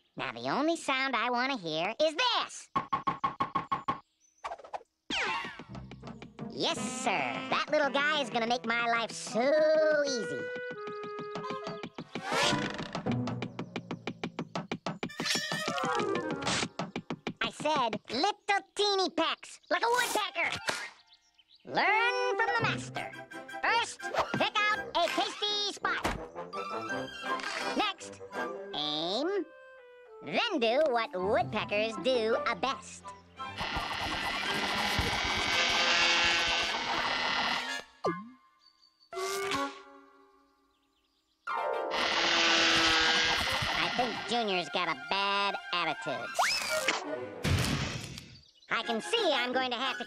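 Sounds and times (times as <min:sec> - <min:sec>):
cartoon music: 0:06.5 - 0:12.3, 0:15.1 - 0:16.5, 0:21.7 - 0:25.4, 0:26.0 - 0:33.6, 0:38.0 - 0:38.4, 0:42.8 - 0:47.2, 0:48.7 - 0:50.0
cartoon woodpecker rapid pecking: 0:33.5 - 0:37.8, 0:41.9 - 0:45.0.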